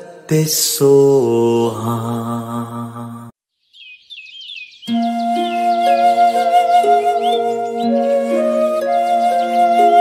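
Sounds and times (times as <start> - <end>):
chanted mantra music: 0.0 - 3.3
music with long held tones: 4.9 - 10.0.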